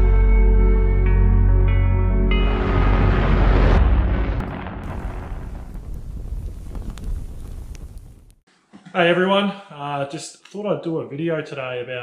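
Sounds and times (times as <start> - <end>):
deep rumbling boom: 2.3 - 8.3.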